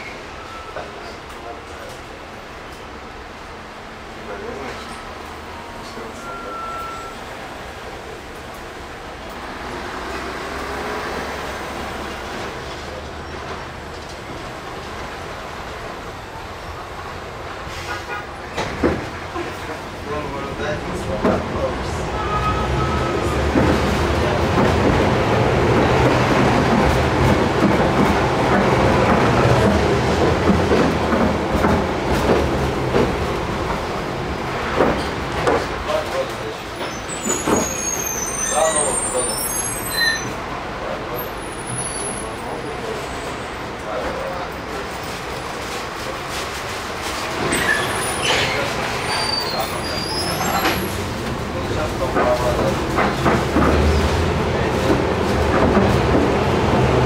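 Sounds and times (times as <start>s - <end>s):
tram rolling on rails: 0.0s - 57.0s
high squeal: 5.8s - 7.2s, 36.8s - 40.4s, 47.5s - 50.9s.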